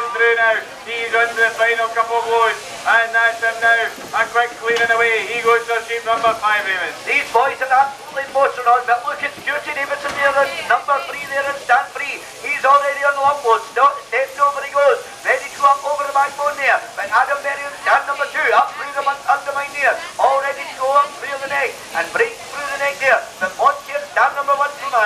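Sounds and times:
commentator talking over loudspeaker: 0.0s - 25.0s.

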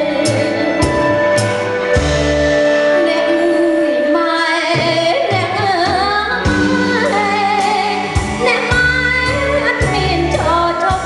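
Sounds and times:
woman singing with vibrato: 0.0s - 1.9s, 2.7s - 11.0s
live band with keyboard: 0.0s - 11.0s.

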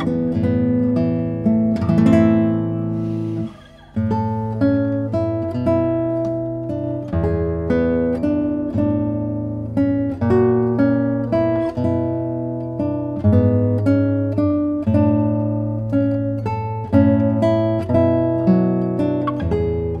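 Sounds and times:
classical guitar fingerstyle: 0.0s - 20.0s.

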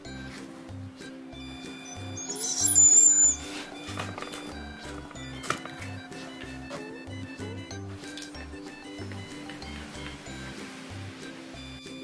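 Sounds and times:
background music: 0.0s - 12.0s
dog whining: 1.7s - 4.8s.

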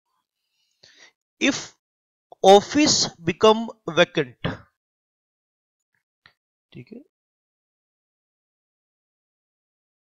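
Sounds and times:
intake of breath: 0.4s - 1.2s.

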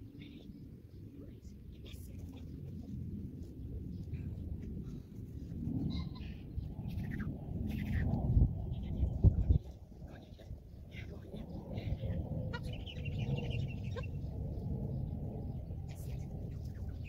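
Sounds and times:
low rumble: 0.0s - 17.0s.

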